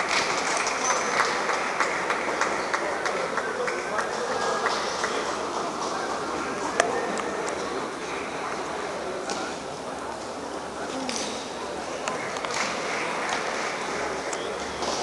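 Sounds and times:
murmur of voices: 0:00.0 - 0:15.0.

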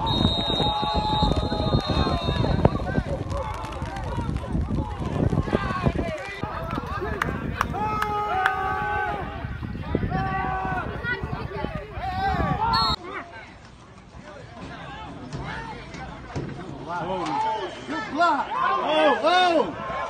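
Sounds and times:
people shouting and cheering: 0:00.0 - 0:13.6, 0:14.2 - 0:20.0
long drawn-out yells: 0:06.4 - 0:12.8.

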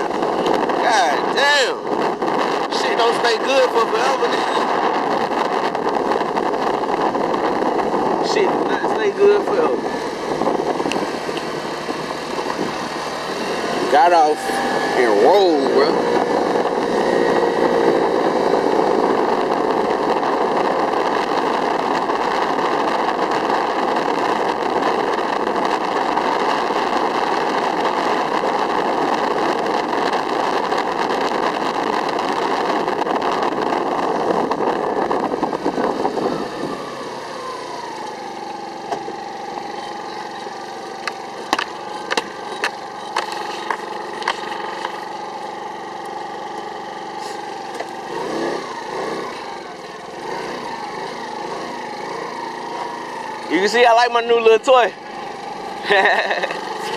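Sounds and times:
road and wind noise: 0:00.0 - 0:56.9
small motorbike engine: 0:00.0 - 0:56.9.

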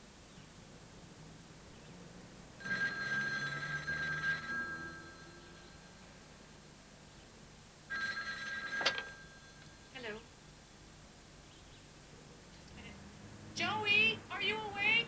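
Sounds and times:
telephone bell ringing: 0:02.6 - 0:06.3, 0:07.9 - 0:10.2.

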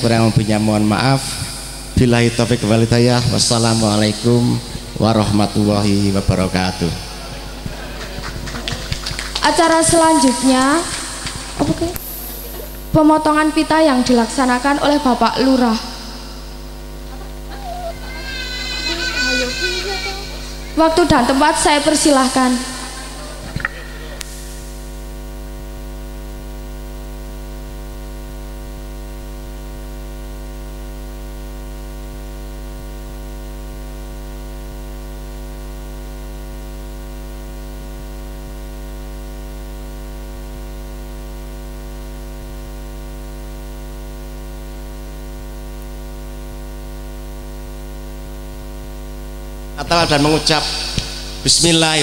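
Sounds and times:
electrical mains hum: 0:00.0 - 0:52.0.

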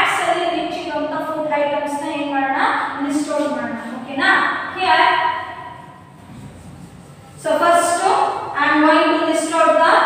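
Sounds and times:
woman speaking: 0:00.0 - 0:05.8, 0:07.4 - 0:10.0.

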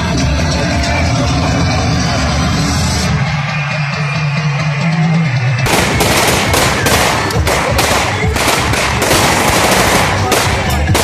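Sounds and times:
loud music: 0:00.0 - 0:11.0
rapid gunfire: 0:05.6 - 0:11.0.

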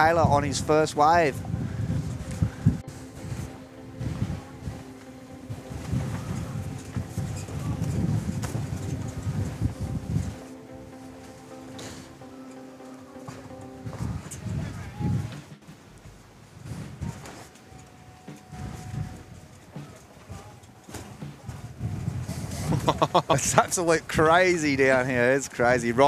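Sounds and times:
wind buffeting microphone: 0:00.0 - 0:12.2, 0:13.4 - 0:26.0.

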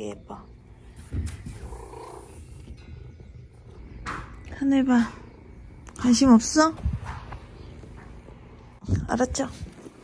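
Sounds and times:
cat purring: 0:01.4 - 0:02.8.

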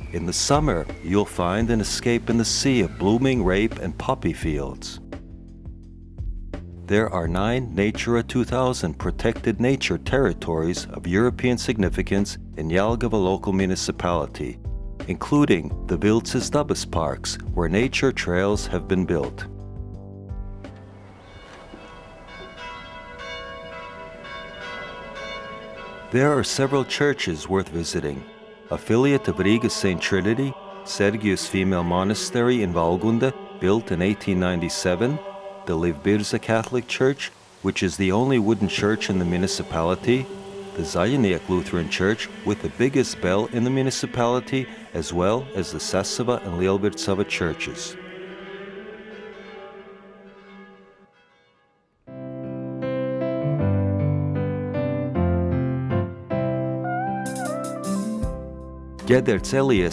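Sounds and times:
church bells ringing: 0:20.9 - 0:35.3, 0:38.4 - 0:45.9.

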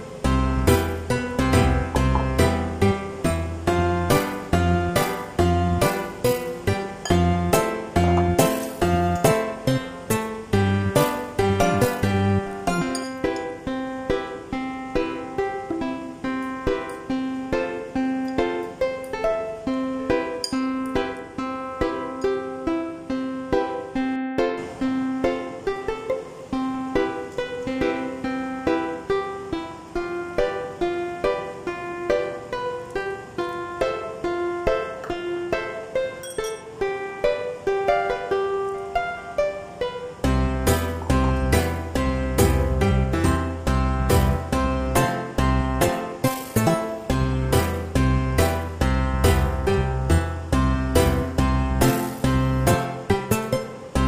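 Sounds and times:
plucked-string tune with beat: 0:00.0 - 0:54.0.

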